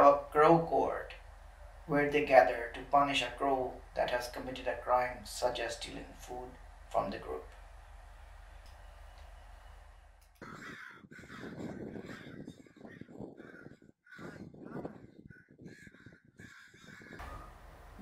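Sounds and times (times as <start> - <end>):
faint steady hum: 0.0 - 10.9, 17.2 - 18.0
crows cawing: 10.4 - 17.9.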